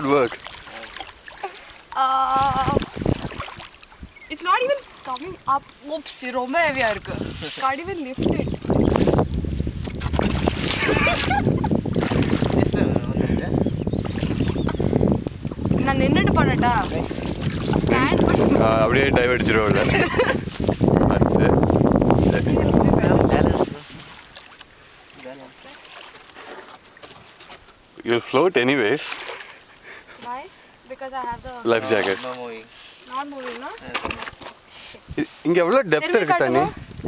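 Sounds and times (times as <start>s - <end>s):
paddle splashing water: 0.0s - 37.0s
wind rumble on microphone: 2.2s - 4.3s, 6.7s - 24.2s, 36.4s - 37.0s.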